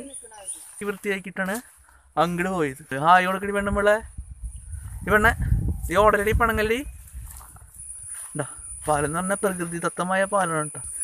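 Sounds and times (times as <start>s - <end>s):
high-pitched insect trill: 0.0s - 11.0s.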